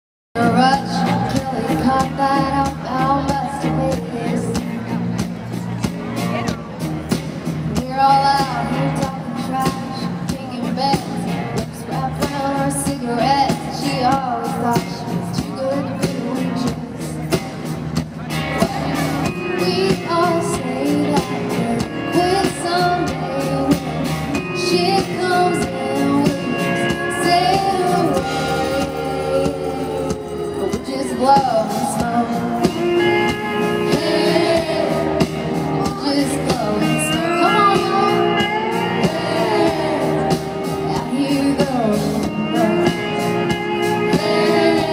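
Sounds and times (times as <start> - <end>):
woman singing: 0.4 - 4.8, 7.7 - 17.2, 18.6 - 44.9
live country band playing: 0.4 - 44.9.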